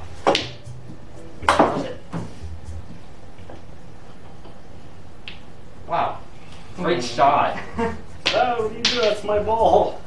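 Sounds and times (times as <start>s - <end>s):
cue striking ball: 0.0s - 4.6s
pool balls clacking: 0.0s - 4.6s, 8.2s - 10.0s
balls rolling with faint ticks: 8.1s - 10.0s.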